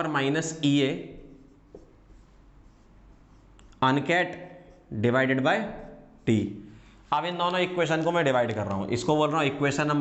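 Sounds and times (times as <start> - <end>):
marker scratching on whiteboard: 0.0 - 10.0.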